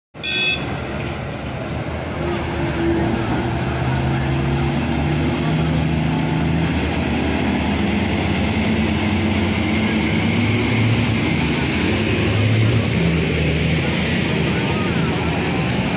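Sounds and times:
brief high tone: 0.2 - 0.7
heavy diesel engines: 0.2 - 15.9.

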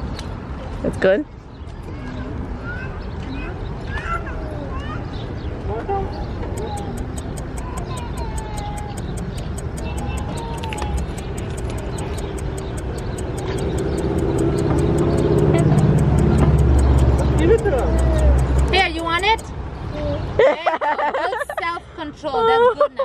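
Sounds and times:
vehicle engine rumble: 0.0 - 20.4
fast even ticking: 6.5 - 19.4.

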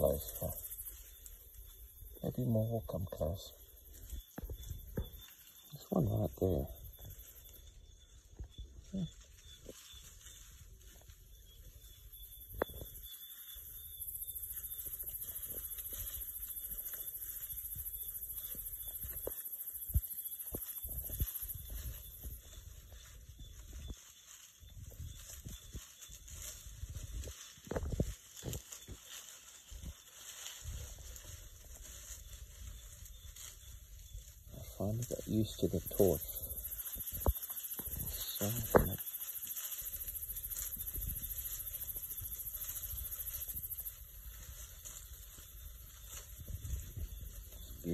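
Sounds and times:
night insects trilling: 0.0 - 47.9
rustles and knocks in undergrowth: 0.0 - 47.9.

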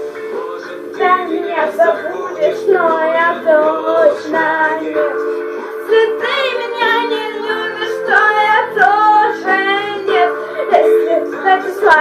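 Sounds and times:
backing music: 0.0 - 12.0
child singing pop song: 0.0 - 12.0.

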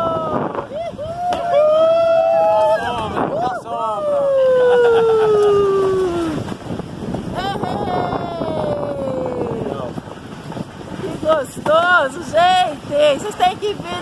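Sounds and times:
wind on microphone: 0.0 - 14.0
person crying out in excitement: 4.3 - 6.4.

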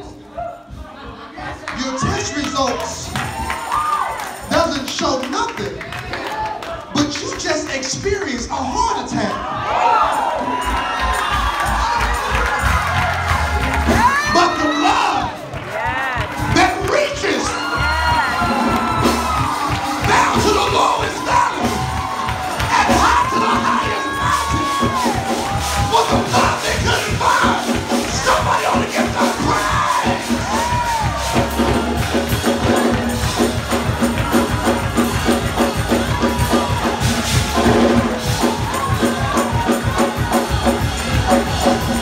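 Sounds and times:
congregation shouting and cheering: 0.0 - 42.0
music: 1.7 - 42.0.

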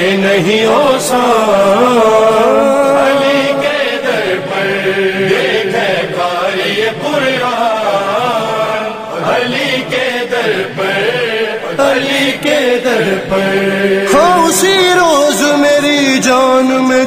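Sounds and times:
voices chanting devotional melody: 0.0 - 17.0.

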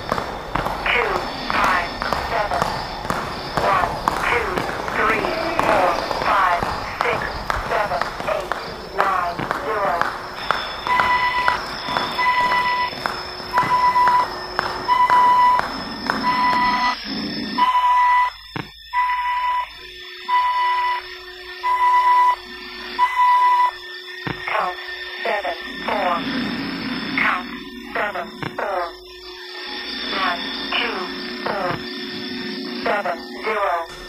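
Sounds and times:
people training: 0.0 - 21.0, 24.3 - 31.9
timer beeping: 0.0 - 34.0.

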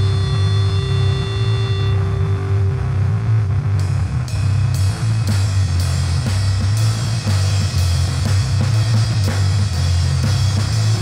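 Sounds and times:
amplified guitar drone: 0.0 - 11.0.

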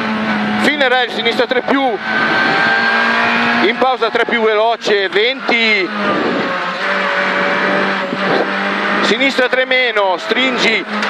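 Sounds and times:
rally car engine running hard: 0.0 - 11.0.

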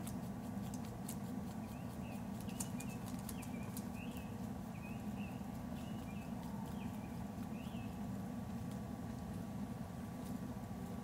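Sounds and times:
crackling rustles: 0.0 - 11.0
steady low hum: 0.0 - 11.0
small bird chirping: 0.7 - 8.1.

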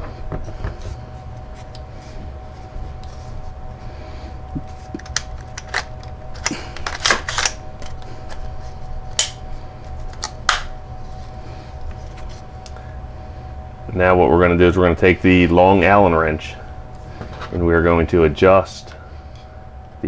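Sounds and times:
faint steady hum: 0.0 - 20.0.

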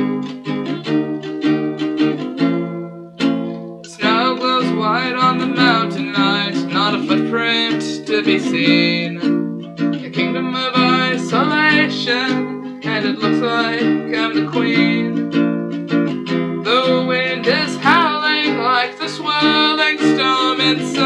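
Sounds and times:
strummed ukulele: 0.0 - 21.0
person singing: 3.5 - 21.0.

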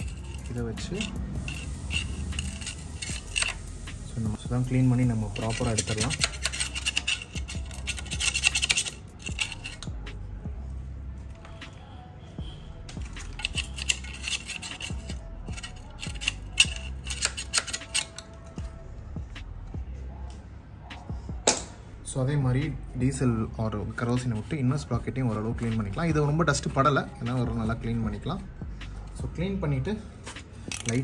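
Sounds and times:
metal tool scraping grease: 0.0 - 3.9, 4.6 - 10.0, 13.0 - 18.5, 30.2 - 31.0
man talking: 0.4 - 1.2, 4.1 - 6.2.

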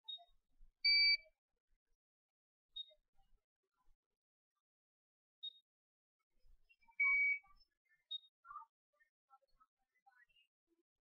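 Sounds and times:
faint brief chirp: 0.1 - 1.3, 6.9 - 8.3.

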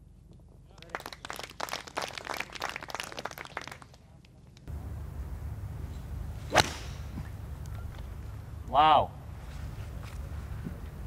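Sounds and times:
outdoor background noise: 0.0 - 11.0
spectators applauding: 0.7 - 4.0
golf club striking ball: 6.4 - 7.4.

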